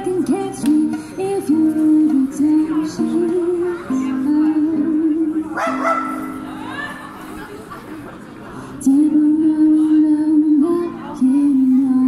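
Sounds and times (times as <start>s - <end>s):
woman singing: 0.0s - 5.6s, 8.8s - 12.0s.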